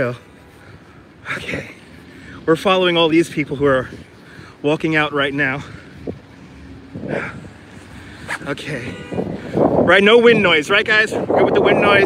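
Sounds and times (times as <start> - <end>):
traffic rumble: 0.0 - 12.0
wind on microphone: 5.8 - 12.0.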